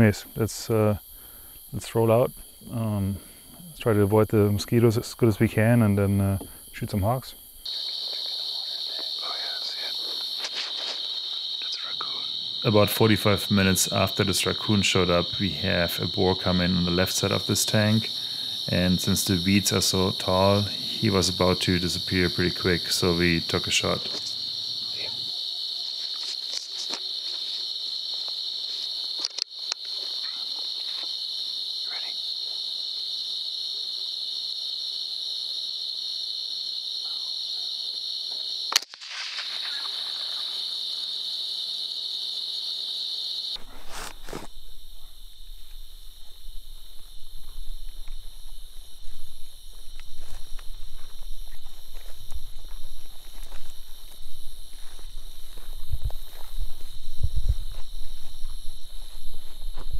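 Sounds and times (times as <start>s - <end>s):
night insects chorus: 0.0s - 59.9s
footsteps through grass and brush: 9.9s - 11.4s, 25.8s - 31.2s, 43.6s - 44.6s, 45.6s - 59.9s
rifle shot: 38.7s - 40.1s.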